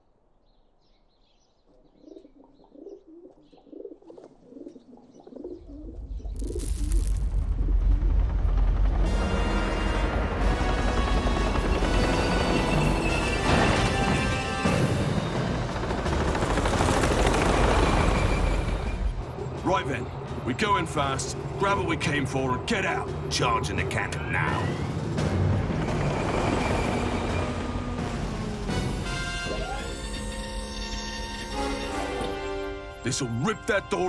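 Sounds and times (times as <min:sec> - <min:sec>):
pigeons cooing: 0:01.6 - 0:06.6
dramatic background music: 0:07.2 - 0:34.0.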